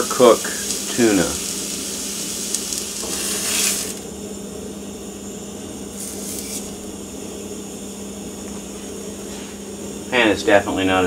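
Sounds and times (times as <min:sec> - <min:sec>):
fish sizzling in a skillet: 0:00.0 - 0:04.1, 0:05.9 - 0:06.8.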